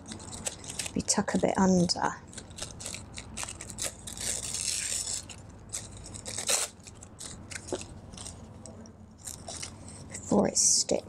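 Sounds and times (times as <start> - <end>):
paper crackle: 0.0 - 10.3.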